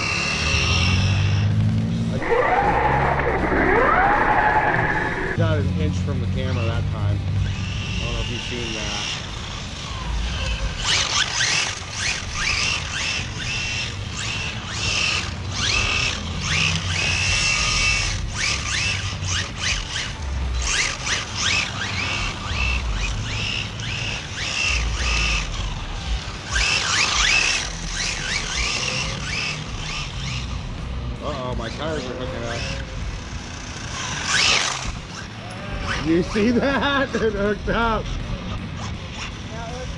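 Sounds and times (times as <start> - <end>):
rc car motors whining: 0.0 - 39.9.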